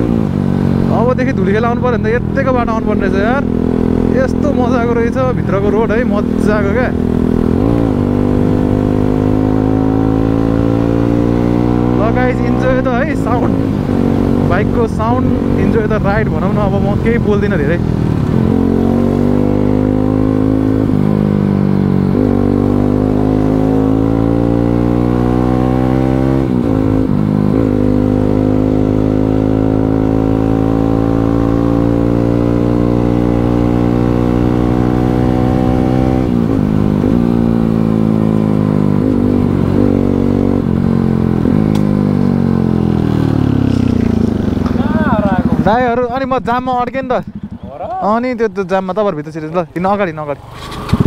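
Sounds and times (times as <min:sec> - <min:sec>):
motorcycle engine revving: 0:00.0 - 0:51.0.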